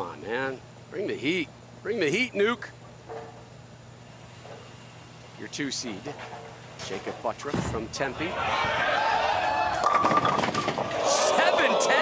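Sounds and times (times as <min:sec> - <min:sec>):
bowling ball crashing into pins: 0:07.5 - 0:11.1
voices: 0:10.9 - 0:12.0.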